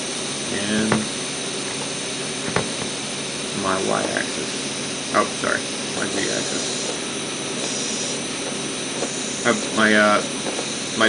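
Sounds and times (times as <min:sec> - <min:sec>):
cooling fan whirring hiss: 0:00.0 - 0:11.0.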